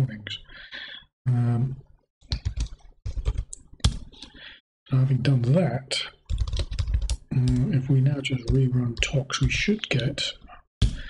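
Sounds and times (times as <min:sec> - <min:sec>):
computer keyboard typing: 0:02.2 - 0:04.4, 0:06.2 - 0:09.7.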